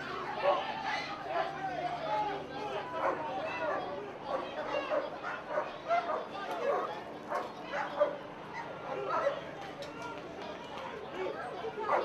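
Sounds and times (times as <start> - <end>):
people's voices: 0.0 - 12.0
dogs barking: 3.0 - 9.4.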